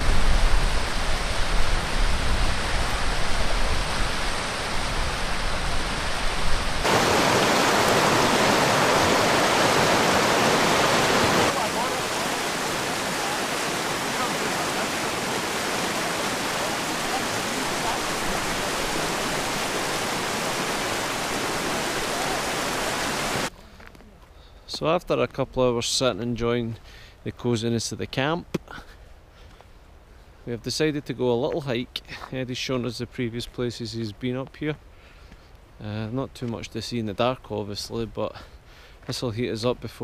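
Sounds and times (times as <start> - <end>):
river rushing over rapids: 0.0 - 23.5.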